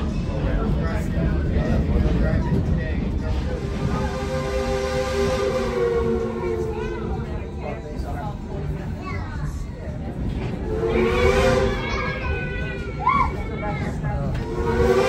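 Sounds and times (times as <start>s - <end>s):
train rolling on rails: 0.0s - 15.0s
steam locomotive whistle: 3.8s - 7.2s, 10.6s - 12.2s, 14.4s - 15.0s.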